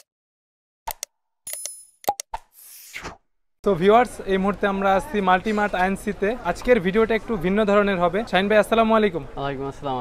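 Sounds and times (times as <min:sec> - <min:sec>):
short clicks and pops: 0:00.9 - 0:02.5.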